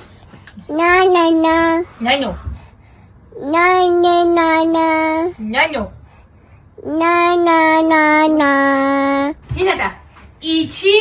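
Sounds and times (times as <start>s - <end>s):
baby singing: 0.7s - 1.9s, 3.4s - 5.4s, 6.8s - 9.4s.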